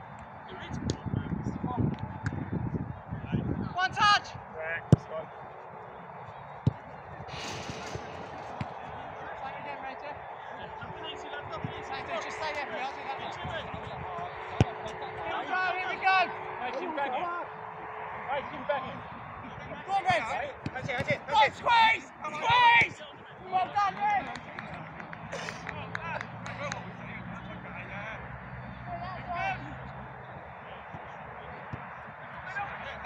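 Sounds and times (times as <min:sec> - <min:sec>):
players shouting: 0:07.3 - 0:13.2, 0:21.0 - 0:25.5.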